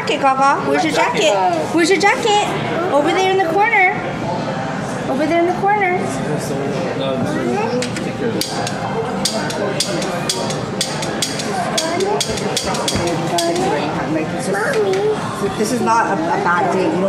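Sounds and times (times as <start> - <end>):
restaurant chatter: 0.0 - 17.0
sharp clicks and clinks: 8.4 - 13.7.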